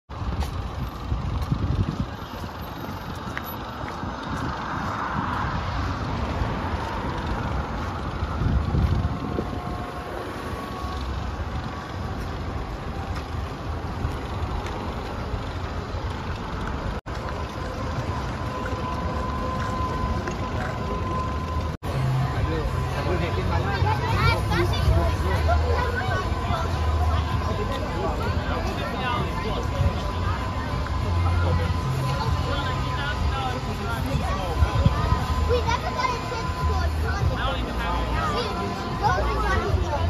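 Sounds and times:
wind buffeting microphone: 0:00.1 - 0:15.1
outdoor background noise: 0:00.1 - 0:40.0.

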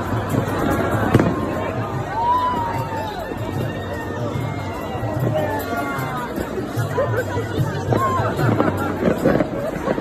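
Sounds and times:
crowd din: 0:00.0 - 0:10.0
firework bang: 0:00.4 - 0:01.8.

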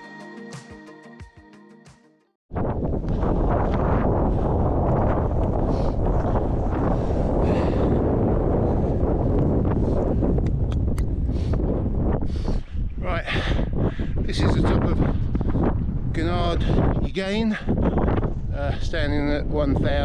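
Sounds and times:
wind buffeting microphone: 0:02.5 - 0:20.0.

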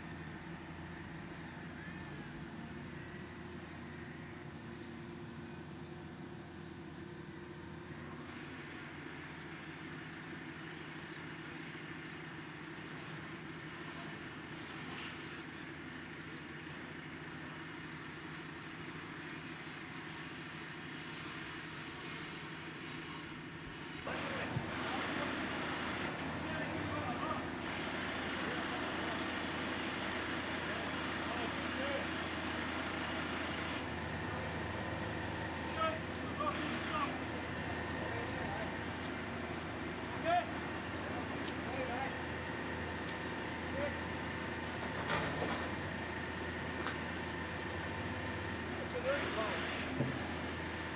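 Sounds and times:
diesel engine running: 0:00.0 - 0:50.9
machinery: 0:17.4 - 0:50.9
voices: 0:24.1 - 0:50.9.

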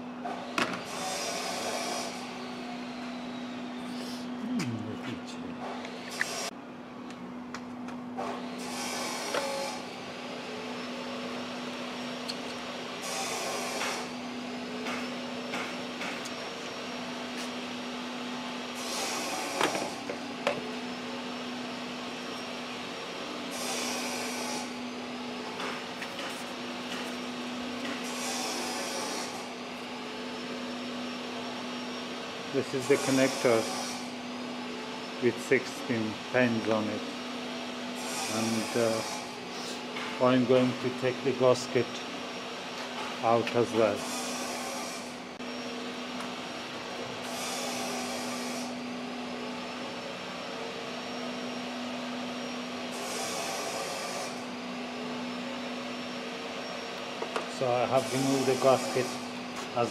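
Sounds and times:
steady low hum: 0:01.6 - 0:33.0.

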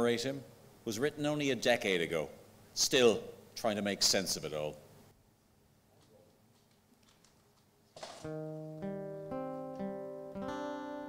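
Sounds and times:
acoustic guitar picking: 0:08.2 - 0:11.0.

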